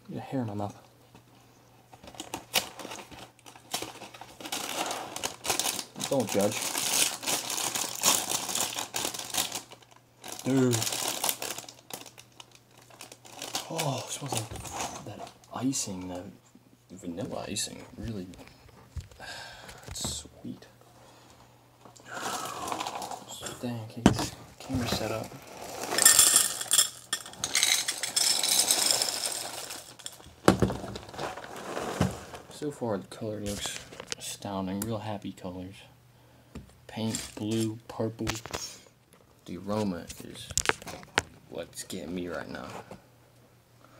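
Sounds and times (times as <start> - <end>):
plastic bag crinkling: 2.0 - 15.7, 22.1 - 23.4, 24.6 - 32.7
cereal rattling into a bowl: 2.3 - 12.2, 24.7 - 32.6.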